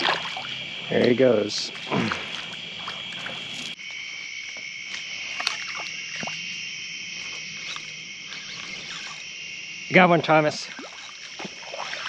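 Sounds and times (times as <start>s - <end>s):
night insects chorus: 0.0s - 12.0s.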